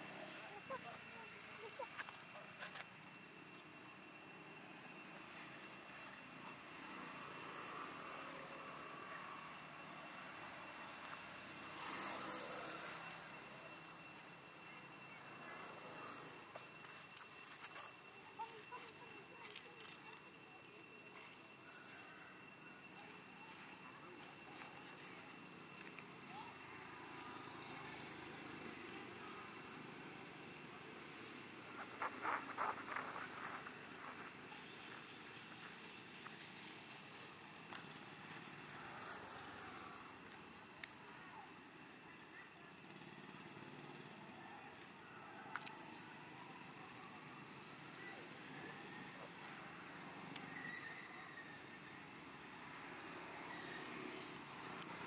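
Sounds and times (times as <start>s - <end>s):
hum of distant engines: 0.0s - 55.0s
steady high-pitched tones: 0.0s - 55.0s.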